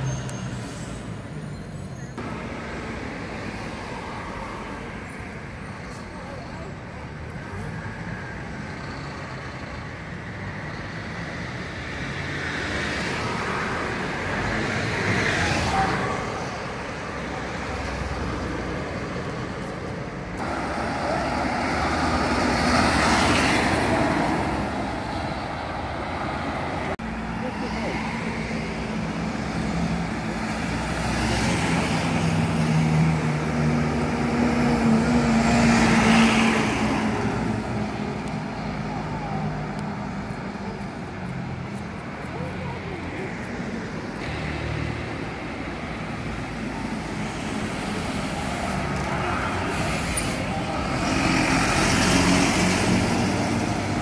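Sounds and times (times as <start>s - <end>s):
buses passing with droning engines: 0.0s - 54.0s
road traffic noise: 0.0s - 54.0s.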